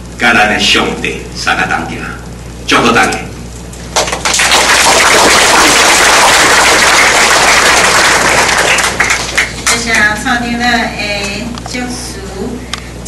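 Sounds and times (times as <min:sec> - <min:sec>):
audience applauding: 0:03.9 - 0:09.7.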